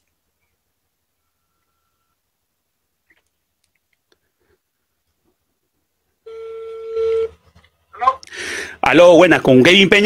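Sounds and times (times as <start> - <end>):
telephone ringback tone: 1.2 - 2.2.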